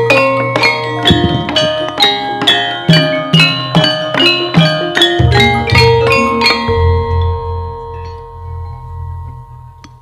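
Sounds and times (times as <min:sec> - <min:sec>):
held metallophone tones: 0:00.0 - 0:10.0.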